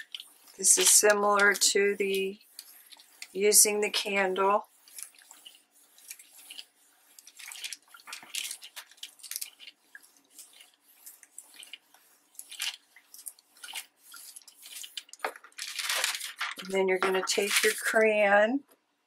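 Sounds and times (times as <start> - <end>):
iron scraping on paper: 0.0 - 18.2
paper rustling: 4.8 - 18.1.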